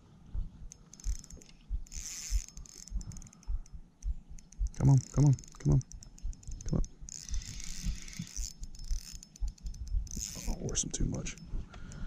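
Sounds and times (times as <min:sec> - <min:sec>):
fishing reel gears ticking: 0:00.7 - 0:12.0.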